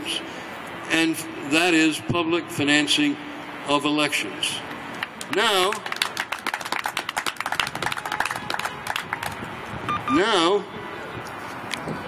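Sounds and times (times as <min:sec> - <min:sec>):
people clapping: 0:05.0 - 0:09.5.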